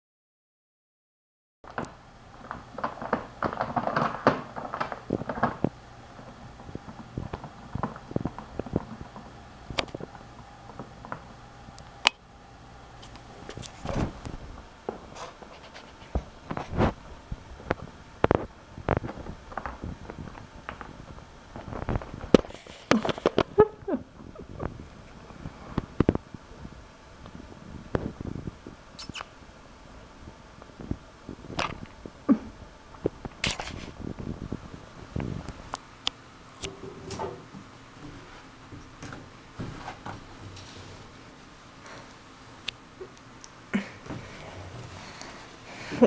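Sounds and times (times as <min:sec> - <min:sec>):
kitten rustling plastic bags: 0:01.7 - 0:11.3, 0:17.6 - 0:24.9.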